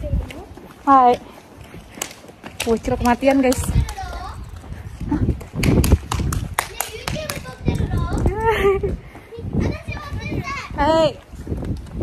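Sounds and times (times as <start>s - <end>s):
children calling out and chattering: 0.0s - 2.0s, 3.6s - 5.4s, 6.5s - 11.4s.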